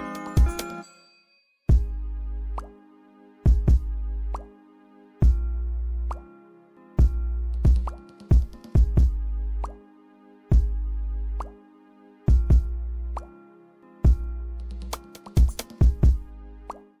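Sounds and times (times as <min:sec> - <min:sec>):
deep bass hits: 0:08.8 - 0:09.8, 0:12.3 - 0:12.8.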